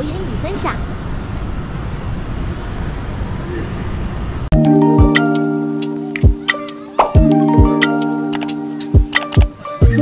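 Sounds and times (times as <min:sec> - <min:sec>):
scooters and cars passing: 0:00.0 - 0:04.5
street traffic rumble: 0:00.0 - 0:10.0.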